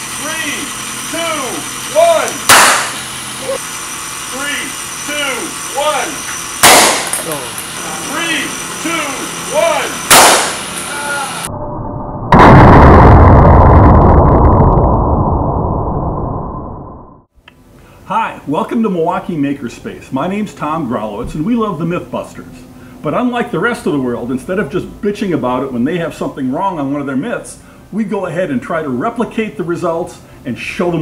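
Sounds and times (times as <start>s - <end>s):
ball cannon firing bangs: 2.2s - 3.1s, 6.6s - 7.4s, 10.1s - 10.8s
loud low rumble: 11.1s - 17.3s.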